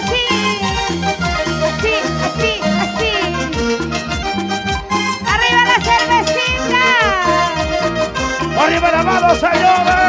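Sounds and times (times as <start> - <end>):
live folk band music: 0.0 - 10.0.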